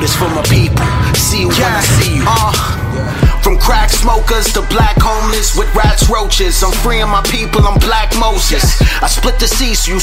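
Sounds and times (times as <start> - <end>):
heavy bass: 0.0 - 10.0
rapping over a beat: 0.0 - 10.0.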